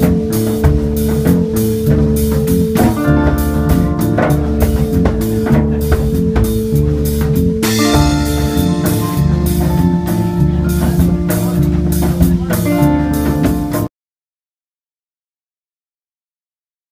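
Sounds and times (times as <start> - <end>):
reggae band playing: 0.0 - 13.9.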